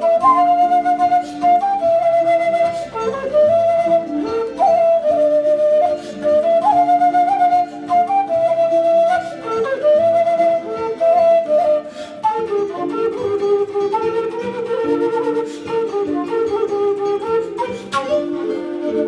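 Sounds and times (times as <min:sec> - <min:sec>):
wooden flute melody: 0:00.0 - 0:19.0.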